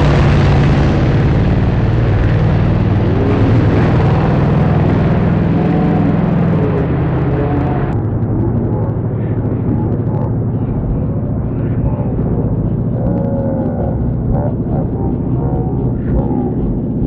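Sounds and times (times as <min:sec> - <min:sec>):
race car engine full throttle: 0:00.0 - 0:17.0.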